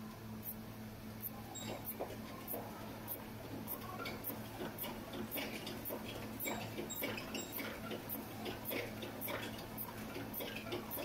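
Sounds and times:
steady low hum: 0.0 - 11.0
exercise bike squeaking and ticking: 1.3 - 11.0.

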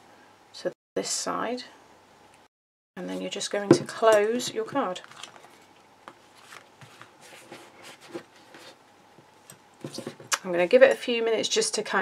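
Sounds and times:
paper rustling: 4.9 - 8.8.

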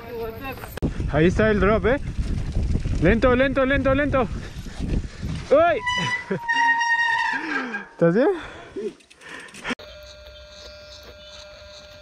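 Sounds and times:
high squealing tone: 5.6 - 8.0.

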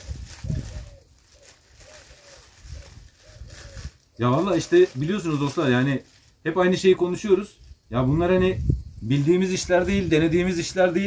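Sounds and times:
dried herbs and plastic bag rustling: 0.0 - 11.0.

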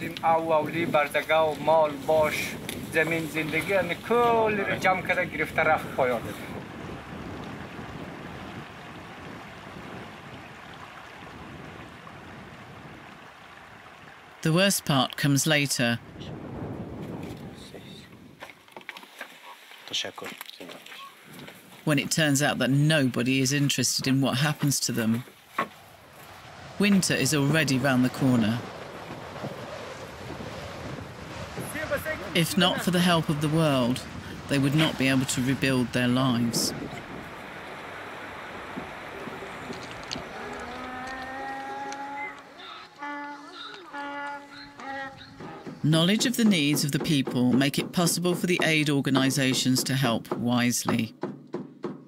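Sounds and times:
wind rushing: 0.3 - 10.5, 16.0 - 18.4, 25.8 - 42.7
man speaking: 21.9 - 25.2, 26.8 - 28.7, 31.7 - 36.7, 45.8 - 51.1
wind hissing: 25.7 - 32.4, 36.3 - 45.9.

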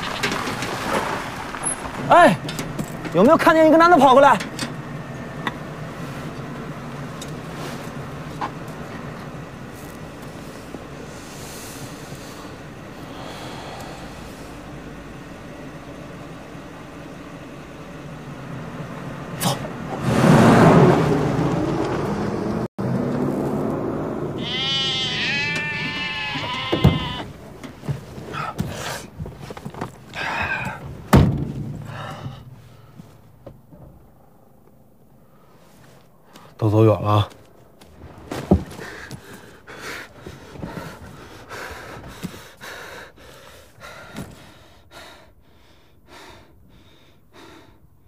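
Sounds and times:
vehicle engine idling: 0.0 - 20.0, 22.2 - 36.7
sheep or goats bleating: 24.4 - 27.4.

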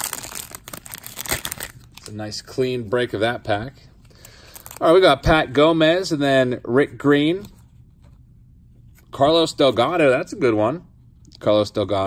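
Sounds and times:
foil wrapper crinkling and tearing: 0.0 - 2.2, 4.4 - 5.0.

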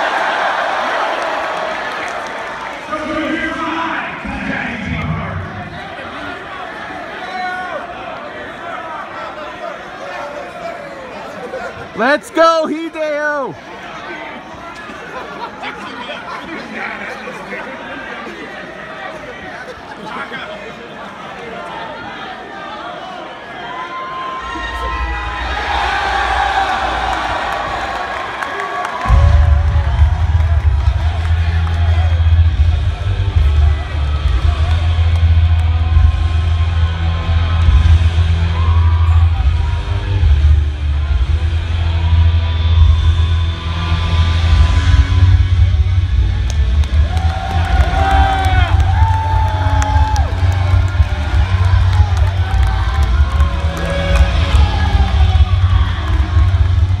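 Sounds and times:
crowd cheering: 0.0 - 57.0
music with heavy bass beat: 29.1 - 57.0.

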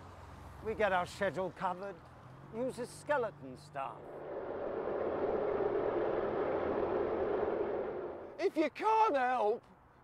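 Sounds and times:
rushing whooshing noise: 4.1 - 8.4.

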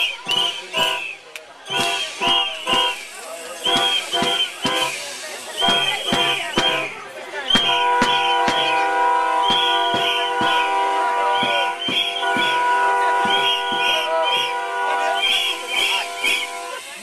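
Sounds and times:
horns holding long notes: 0.0 - 17.0.

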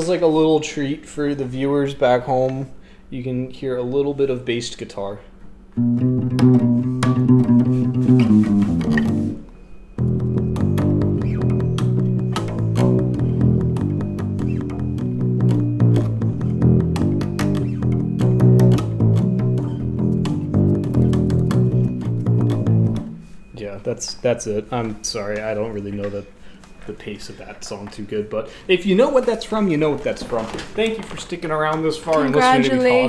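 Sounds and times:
solo bass guitar plucked: 5.8 - 9.4, 10.0 - 23.4.

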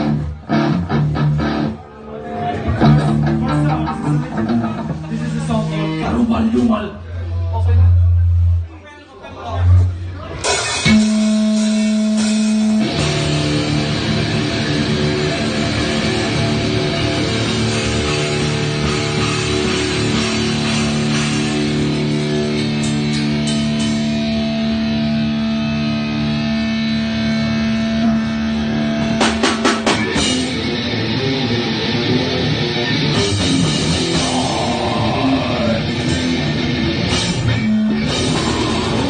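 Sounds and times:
heavy metal band playing: 0.0 - 8.6, 9.6 - 39.0
drum hits: 29.2 - 30.6.

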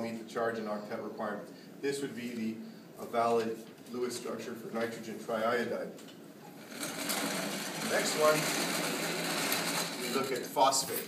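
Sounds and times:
sliding whiteboard rattling on track: 6.6 - 10.4.

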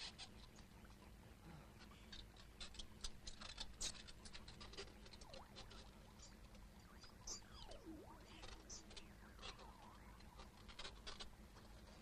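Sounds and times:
rats scurrying: 1.8 - 12.0
rat squeak: 2.6 - 11.3.

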